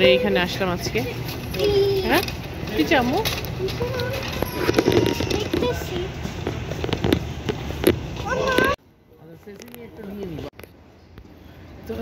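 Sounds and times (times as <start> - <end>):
shopping cart rattling: 0.5 - 6.0.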